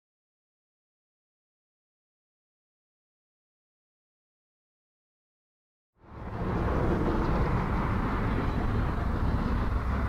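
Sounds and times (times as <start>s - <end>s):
low rumble ambience: 6.0s - 10.0s.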